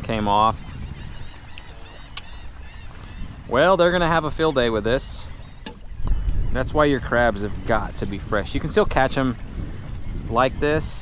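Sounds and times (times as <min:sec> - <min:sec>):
faint bird calls: 0:00.4 - 0:06.9.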